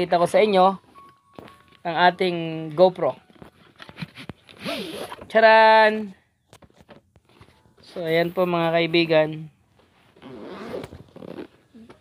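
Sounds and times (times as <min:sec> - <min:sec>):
camera case rustling: 0:03.2 - 0:05.3, 0:06.5 - 0:08.1, 0:09.8 - 0:12.0.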